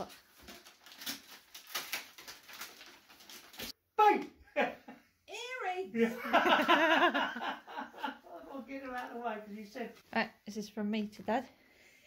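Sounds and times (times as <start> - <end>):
wrapping paper crinkling and tearing: 0.0 - 3.8.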